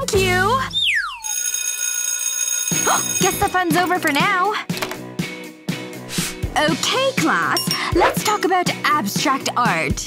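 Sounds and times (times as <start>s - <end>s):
electric school bell ringing: 1.2s - 3.7s.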